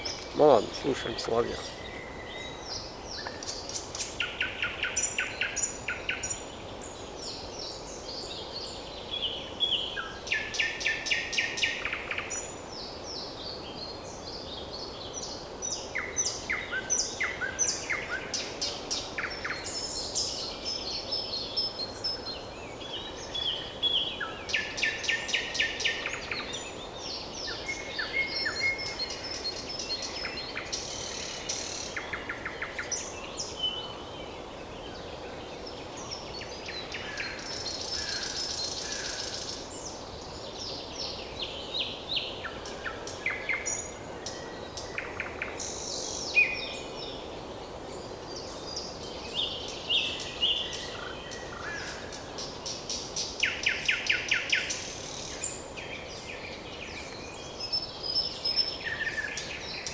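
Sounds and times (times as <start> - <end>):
nightingale singing: 0.0 - 34.1.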